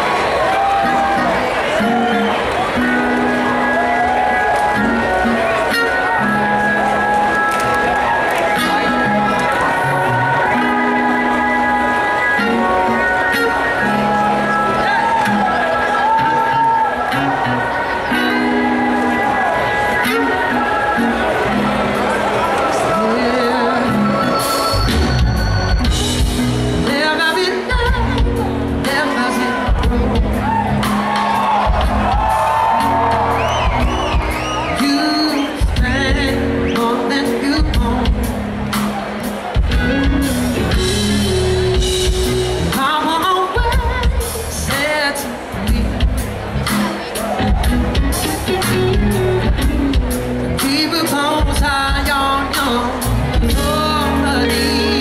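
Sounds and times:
live band playing: 0.0s - 55.0s
person singing: 22.7s - 25.0s, 26.8s - 31.0s, 34.6s - 38.8s, 39.8s - 55.0s
man singing: 34.7s - 38.3s, 50.6s - 55.0s.

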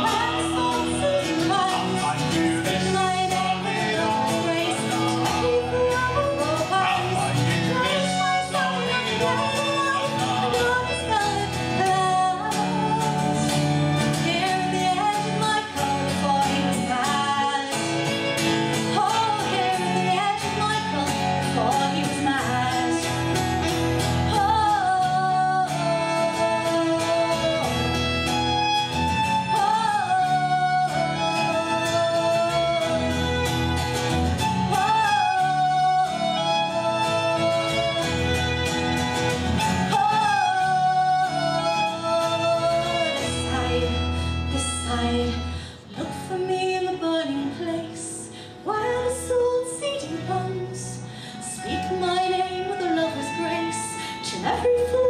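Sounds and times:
strummed acoustic guitar: 0.0s - 55.0s
violin: 0.0s - 55.0s
woman singing: 0.0s - 55.0s.

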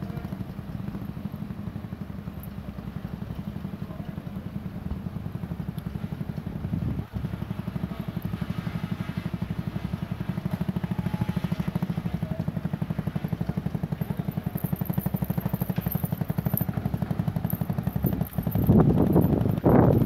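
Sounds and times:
fire engine driving past: 0.0s - 14.6s.

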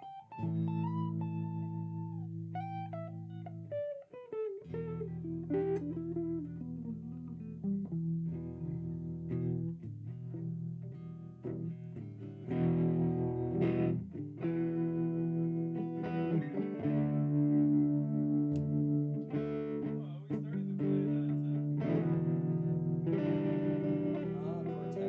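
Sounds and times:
electric guitar chords: 0.0s - 25.0s.

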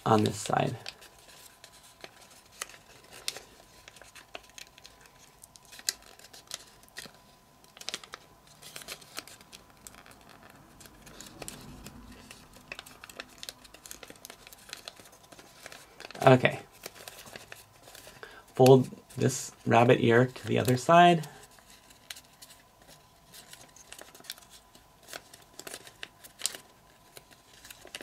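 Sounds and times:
paper crinkling as folded: 0.0s - 28.0s.

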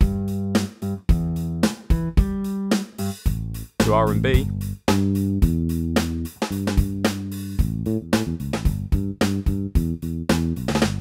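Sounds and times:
drum and bass groove: 0.0s - 11.0s.

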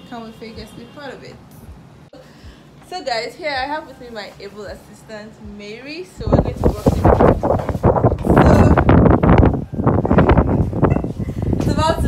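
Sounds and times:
wind buffeting microphone: 6.2s - 12.0s.

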